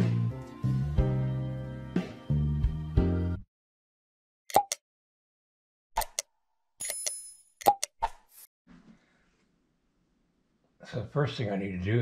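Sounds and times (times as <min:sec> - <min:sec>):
quick pops or clicks: 0:04.5 - 0:04.8, 0:06.0 - 0:06.3, 0:07.6 - 0:08.3.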